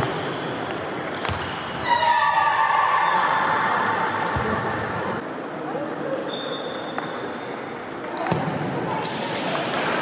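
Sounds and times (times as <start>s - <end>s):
sports hall noise: 0.0s - 10.0s.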